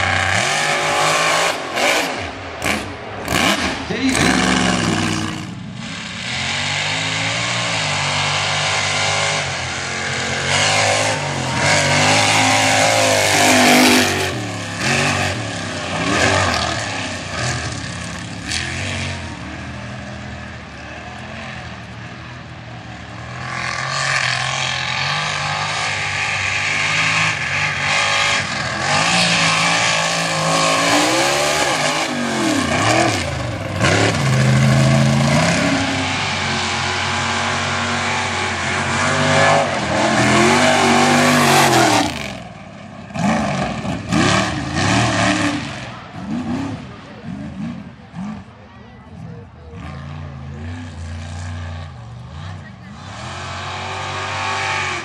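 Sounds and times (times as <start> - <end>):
truck engine revving loudly: 0.0 - 55.0
truck engines running hard: 0.0 - 55.0.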